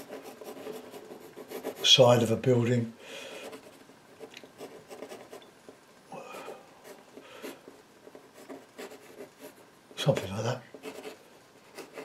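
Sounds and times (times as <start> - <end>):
pencil scratching on board: 0.0 - 2.0, 3.4 - 5.4, 6.8 - 9.7, 10.7 - 12.0.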